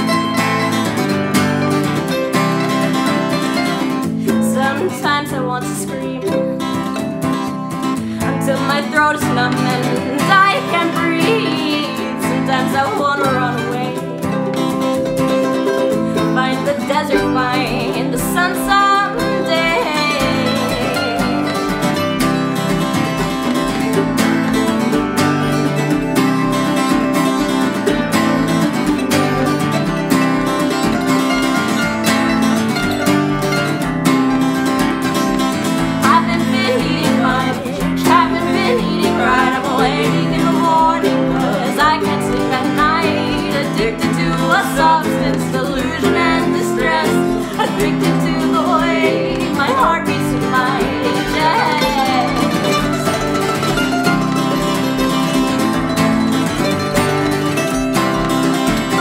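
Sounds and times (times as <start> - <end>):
acoustic guitar: 0.0 - 59.0
mandolin: 0.0 - 59.0.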